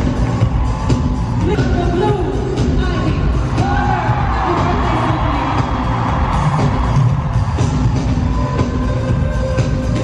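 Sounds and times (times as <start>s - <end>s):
live pop concert music: 0.0s - 10.0s.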